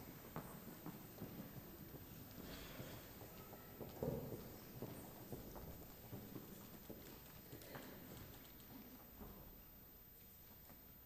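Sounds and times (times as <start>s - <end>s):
footsteps on wooden floor: 0.0s - 8.0s.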